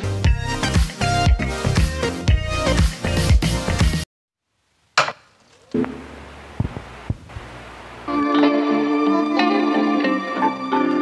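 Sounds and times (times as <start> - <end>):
background music: 0.0 - 4.0, 8.1 - 11.0
vehicle ride rumble: 4.6 - 8.1.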